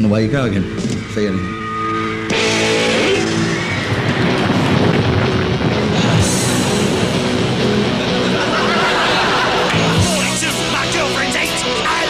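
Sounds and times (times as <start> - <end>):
drums: 0.0 - 12.0
electric guitar: 0.7 - 12.0.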